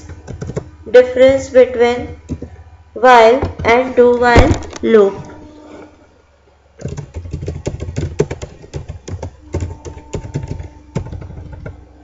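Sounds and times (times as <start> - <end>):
computer keyboard typing: 0.0 - 0.7, 6.8 - 11.8.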